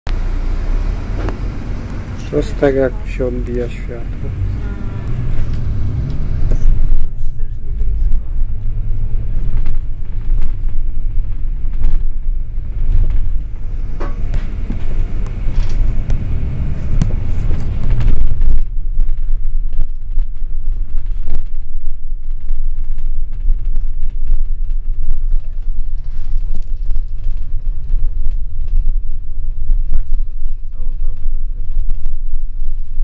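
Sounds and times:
vehicle engine rumble and road noise: 0.1s - 33.0s.

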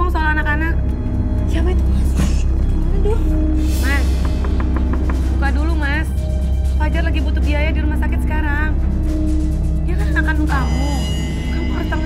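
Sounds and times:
dramatic music with drone: 0.0s - 12.0s.

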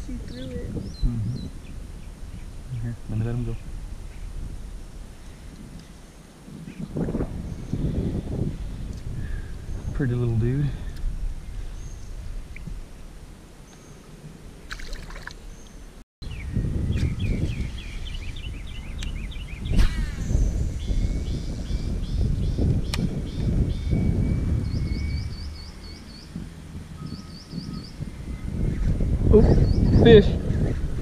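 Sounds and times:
songbirds chirping: 0.0s - 31.0s
wind buffeting microphone: 0.0s - 31.0s.

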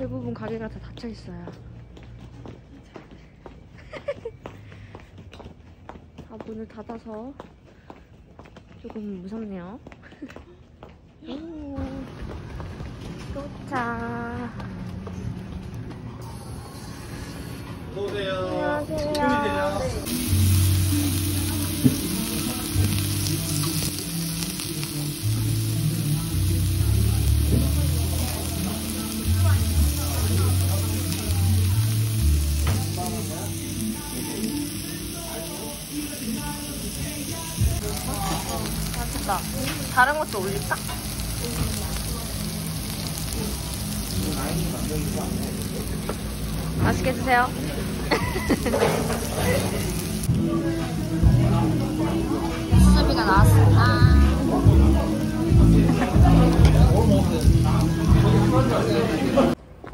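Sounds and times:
people talking: 13.3s - 14.7s, 17.8s - 24.0s, 24.7s - 42.6s, 43.4s - 46.2s, 46.8s - 59.6s
pork sizzling on a griddle: 16.2s - 18.2s, 18.8s - 59.5s
background music: 18.5s - 59.6s.

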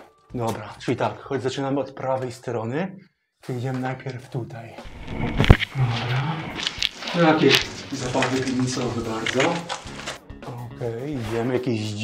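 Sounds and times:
people shuffling on gritty floor: 5.0s - 10.2s.

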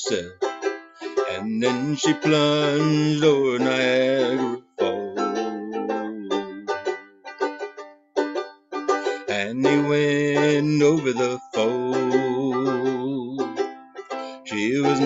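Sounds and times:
man singing: 0.0s - 0.4s, 1.0s - 6.9s, 9.1s - 13.6s, 14.2s - 15.0s
banjo-ukulele strumming: 0.0s - 15.0s.

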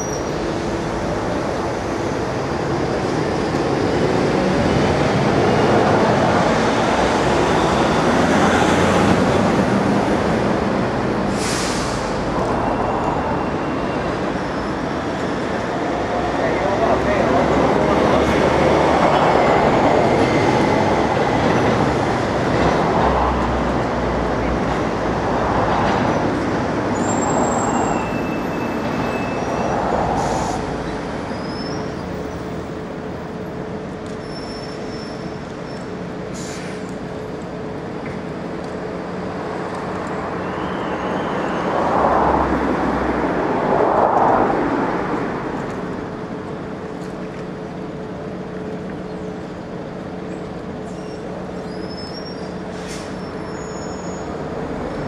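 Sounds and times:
passing traffic rumble: 0.0s - 55.0s.

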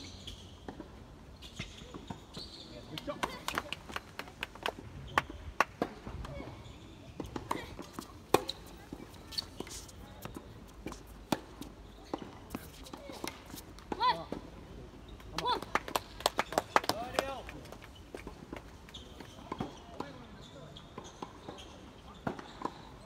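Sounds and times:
racket striking tennis ball: 7.2s - 14.0s.

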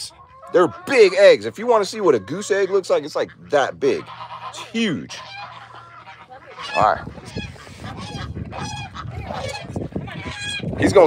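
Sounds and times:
geese honking: 0.0s - 11.0s
wind rumbling on microphone: 6.5s - 11.0s.

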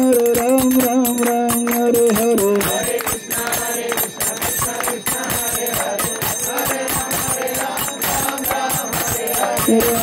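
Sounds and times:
hand cymbals ringing: 0.0s - 10.0s.

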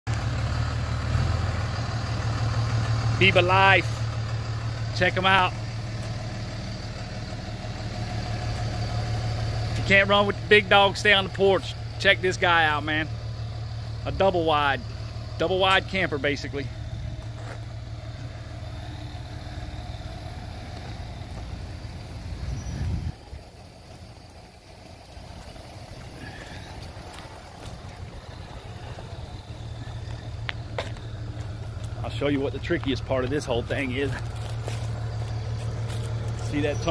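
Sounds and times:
truck engine idling: 0.1s - 36.9s.

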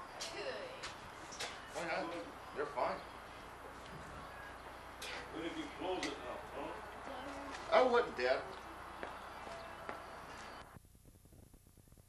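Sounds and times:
faint steady background noise: 0.0s - 12.0s.

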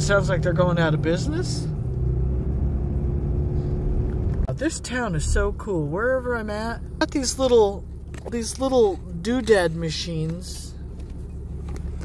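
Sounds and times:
truck engine rumble: 0.0s - 12.0s.

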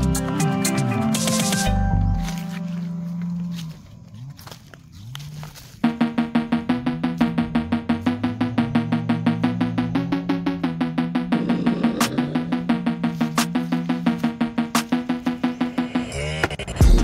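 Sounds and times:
background music with pulsing beat: 0.0s - 3.7s, 5.6s - 17.0s.

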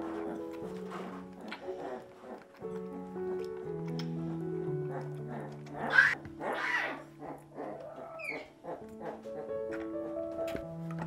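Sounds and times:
soft background music: 0.0s - 11.0s
tiger cub crying: 4.9s - 9.7s.

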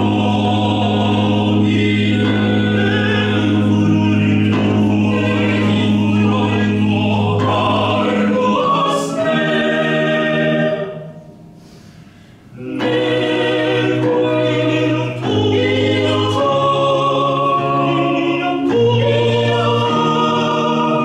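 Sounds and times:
organ: 0.0s - 21.0s
vocal ensemble singing: 0.0s - 21.0s.

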